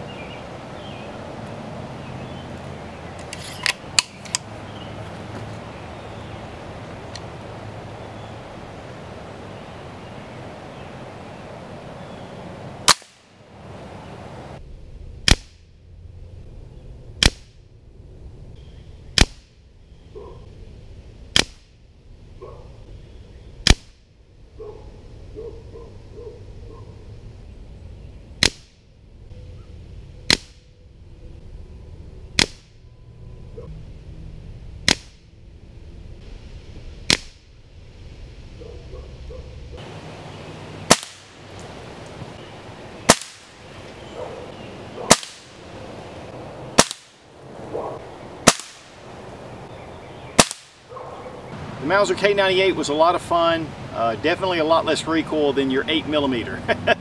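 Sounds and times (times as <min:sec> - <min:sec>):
air rifle shots: 0:12.8 - 0:13.3, 0:23.6 - 0:24.0, 0:28.4 - 0:28.8, 0:32.4 - 0:32.8, 0:34.8 - 0:35.2, 0:37.1 - 0:37.4, 0:40.8 - 0:41.4, 0:43.0 - 0:43.7, 0:45.0 - 0:45.6, 0:46.7 - 0:47.2, 0:48.4 - 0:49.0, 0:50.3 - 0:50.9.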